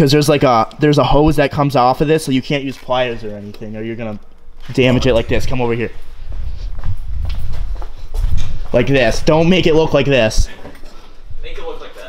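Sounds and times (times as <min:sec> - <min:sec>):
footsteps on concrete: 0:06.1 - 0:08.8.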